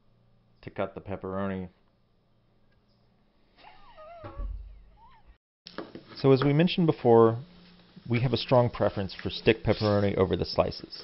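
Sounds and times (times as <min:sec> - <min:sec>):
person laughing: 0:03.6 - 0:05.4.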